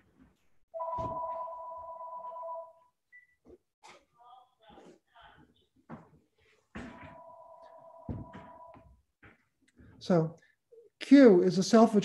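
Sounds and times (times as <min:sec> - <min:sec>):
short high beep: 0:00.8 - 0:01.7
telephone ringing: 0:00.8 - 0:02.8, 0:06.9 - 0:08.8.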